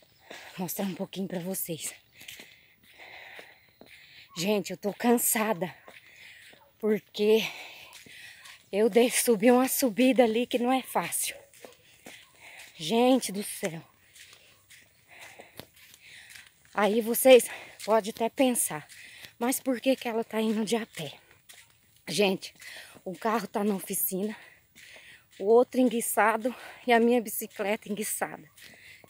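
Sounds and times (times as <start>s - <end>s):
woman breathing heavily: 0.0s - 1.0s, 1.9s - 4.4s, 5.8s - 8.7s, 11.4s - 12.9s, 13.9s - 16.8s, 17.4s - 17.9s, 18.8s - 19.4s, 22.5s - 23.1s, 24.2s - 25.5s, 26.4s - 26.9s, 28.5s - 29.0s
footsteps on road: 0.0s - 29.0s.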